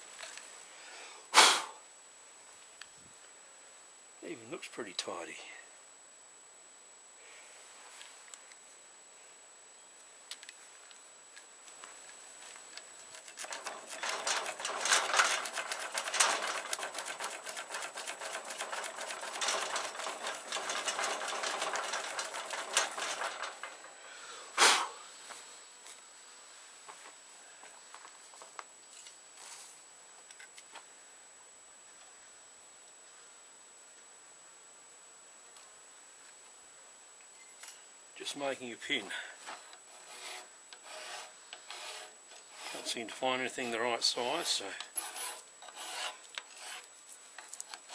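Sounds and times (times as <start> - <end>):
hand tool clicking and rasping on steel: 13.0 - 23.7
loud clatter: 13.2 - 23.9.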